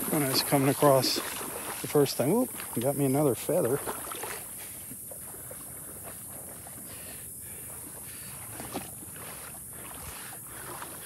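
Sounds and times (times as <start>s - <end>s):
faint water splashes: 0.0s - 11.0s
shallow water sloshing: 0.0s - 11.0s.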